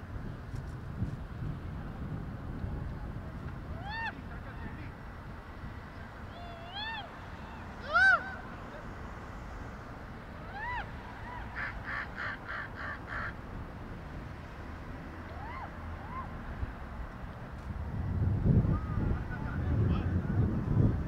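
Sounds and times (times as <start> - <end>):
bird calling: 10.5 - 13.4.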